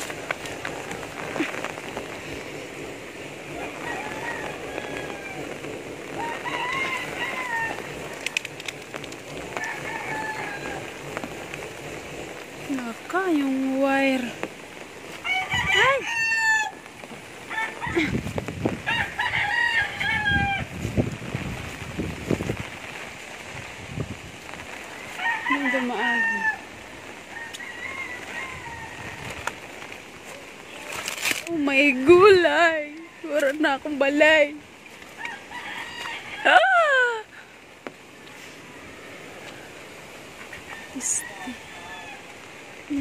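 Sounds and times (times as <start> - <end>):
steady hiss: 0.0 - 19.4, 20.6 - 43.0
rooster crowing: 3.5 - 8.4, 9.3 - 11.3, 15.1 - 18.1, 18.8 - 20.8, 24.9 - 29.7, 35.1 - 37.1, 40.5 - 42.7.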